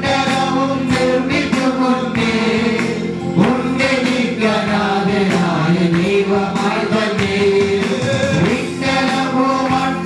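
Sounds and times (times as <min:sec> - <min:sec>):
electronic keyboard with beat: 0:00.0 - 0:10.0
men singing worship song: 0:00.0 - 0:10.0.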